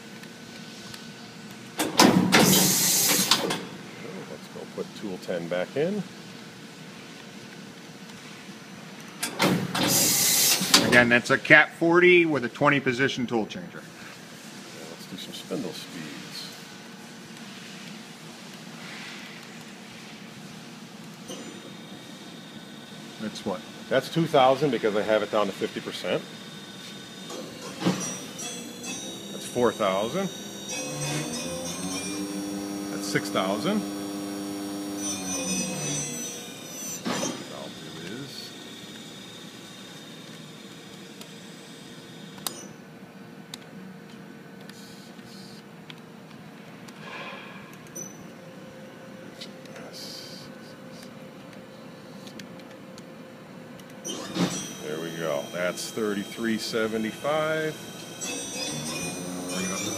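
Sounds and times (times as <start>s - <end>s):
machine low hum: 13.3s - 59.9s
spindle high whine: 21.4s - 42.8s, 47.0s - 59.9s.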